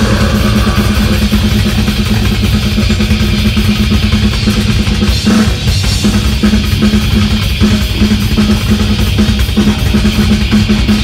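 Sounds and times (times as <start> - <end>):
death metal band playing loud: 0.0 - 11.0.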